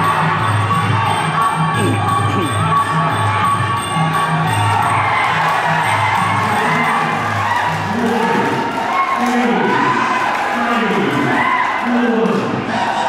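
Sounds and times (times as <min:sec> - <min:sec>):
crowd cheering and shouting: 0:00.0 - 0:13.0
ring music with low drum pattern: 0:00.0 - 0:13.0.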